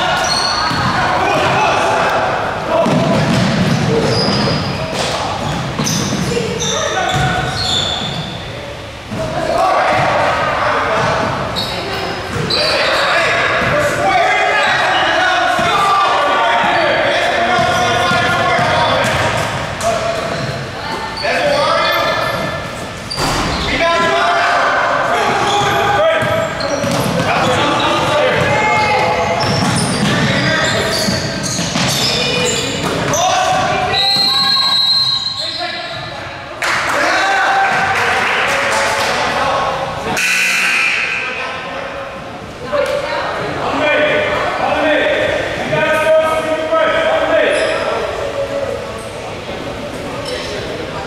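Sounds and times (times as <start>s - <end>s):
people shouting in a gym: 0.0s - 49.0s
basketball bouncing on hardwood floor: 29.4s - 30.4s
referee's whistle: 33.9s - 35.8s, 40.2s - 41.3s.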